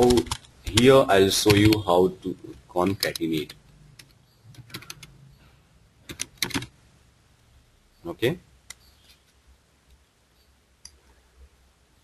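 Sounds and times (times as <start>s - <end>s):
computer keyboard typing: 0.0s - 1.9s, 2.9s - 5.1s, 6.0s - 6.7s.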